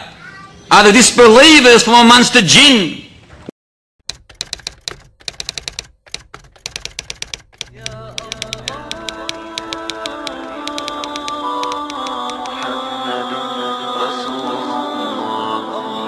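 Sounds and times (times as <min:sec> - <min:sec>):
typewriter key clacks: 0:04.1 - 0:12.6.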